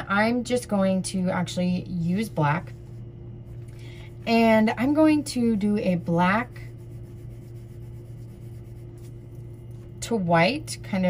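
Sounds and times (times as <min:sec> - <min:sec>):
low electrical hum: 0:00.0 - 0:11.0
oil pastel scratching on paper: 0:02.2 - 0:10.0.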